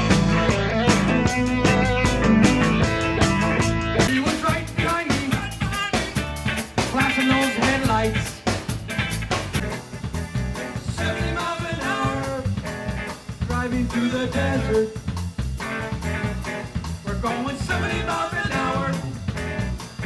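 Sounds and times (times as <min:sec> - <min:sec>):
drum kit beat: 0:00.0 - 0:20.0
rock guitar: 0:00.0 - 0:20.0.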